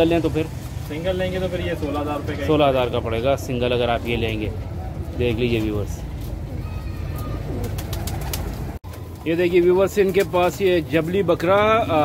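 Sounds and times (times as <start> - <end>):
pigeons cooing: 6.3 - 9.1.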